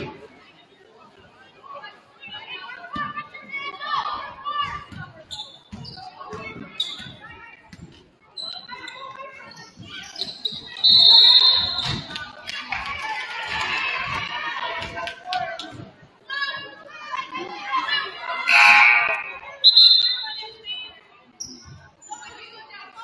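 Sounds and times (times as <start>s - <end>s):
sneakers squeaking on hardwood: 5.3s - 7.2s, 8.4s - 10.9s
people calling out: 18.1s - 20.4s
referee whistle blast: 18.5s - 20.4s.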